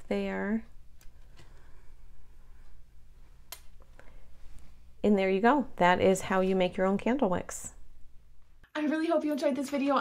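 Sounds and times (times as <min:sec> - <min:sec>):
steady low hum: 0:00.0 - 0:08.7.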